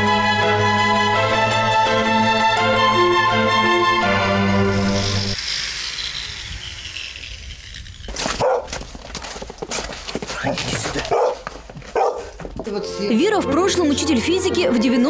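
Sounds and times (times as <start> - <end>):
power tool cutting stone: 4.4 - 9.3
dog barking: 8.4 - 8.7, 10.4 - 12.4.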